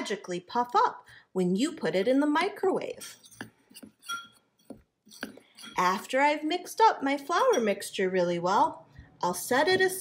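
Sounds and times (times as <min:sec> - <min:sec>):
spoon scraping ceramic bowl: 0:02.8 - 0:06.2, 0:07.3 - 0:07.9
ringing clink of spoon: 0:04.0 - 0:04.4.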